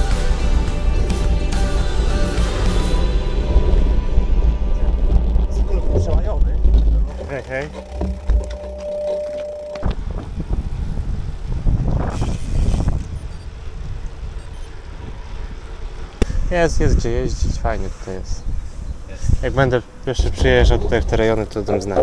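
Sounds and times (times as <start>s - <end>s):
bicycle riding noise: 2.8s - 22.0s
wind noise on microphone: 2.9s - 22.0s
voices: 16.2s - 22.0s.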